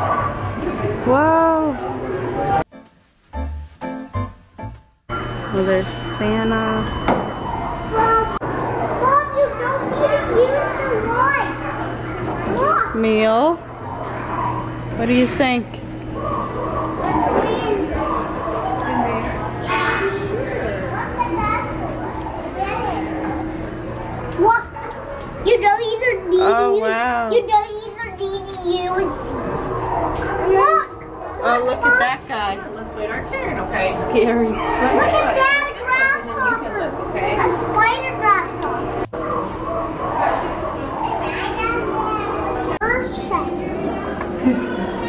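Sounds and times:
children chattering: 0:07.8 - 0:15.0, 0:16.0 - 0:45.0.

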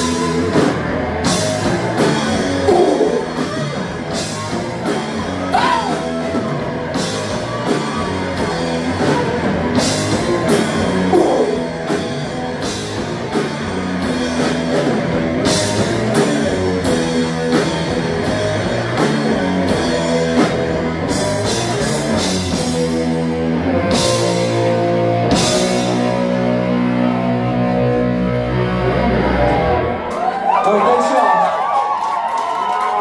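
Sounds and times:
crowd voices: 0:00.0 - 0:33.0
live rock band playing: 0:00.0 - 0:33.0.

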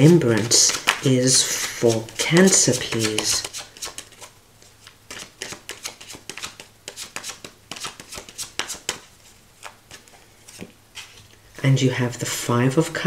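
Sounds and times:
cards being shuffled: 0:00.0 - 0:11.4.

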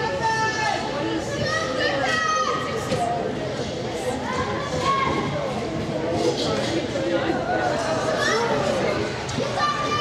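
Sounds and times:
children shouting and calling out: 0:08.0 - 0:10.0.

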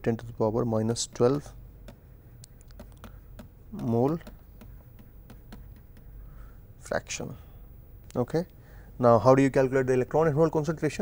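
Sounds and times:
stylus tapping on tablet screen: 0:01.0 - 0:06.2.

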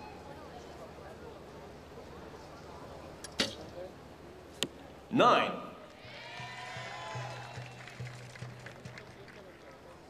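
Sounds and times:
arrow striking target: 0:03.3 - 0:03.7.

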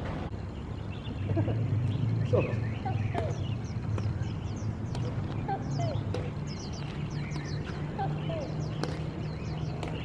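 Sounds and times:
racket striking shuttlecock: 0:06.0 - 0:06.4, 0:08.8 - 0:09.1.

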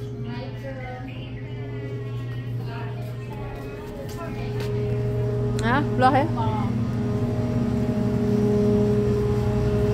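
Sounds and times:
machine hum: 0:00.0 - 0:09.9.

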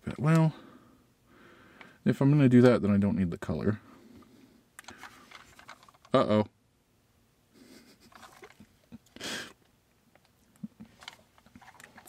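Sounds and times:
faint rustling: 0:03.9 - 0:06.2, 0:10.3 - 0:12.0.

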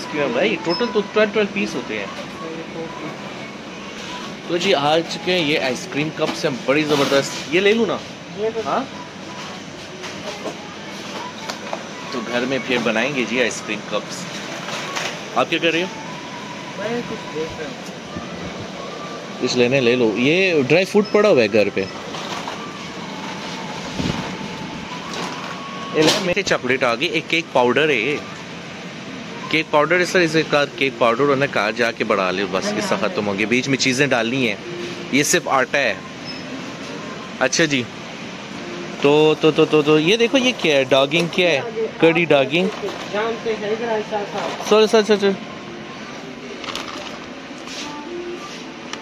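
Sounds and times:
faint thin steady whine: 0:00.0 - 0:49.0
faint voices: 0:00.0 - 0:49.0
ventilation and refrigerator hiss: 0:00.0 - 0:49.0.

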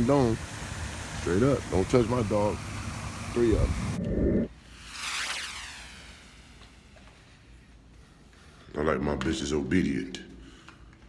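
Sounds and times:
whoosh falling in pitch: 0:03.6 - 0:07.0.

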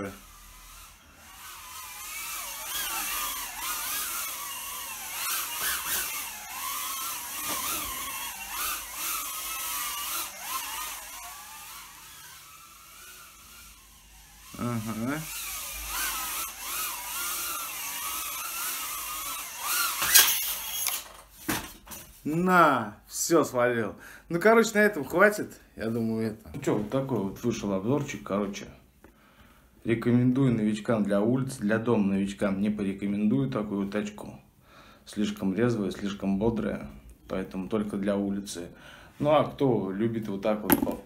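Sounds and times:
drone motors whining: 0:00.0 - 0:21.2.

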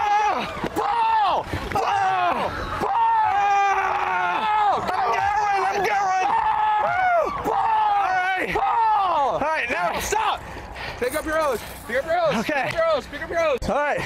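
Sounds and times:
people yelling: 0:00.0 - 0:10.4.

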